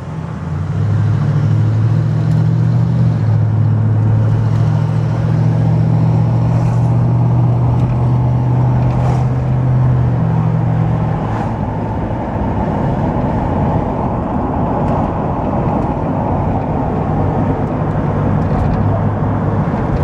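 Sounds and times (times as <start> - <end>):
car engine drone from inside cabin: 0.0 - 20.0.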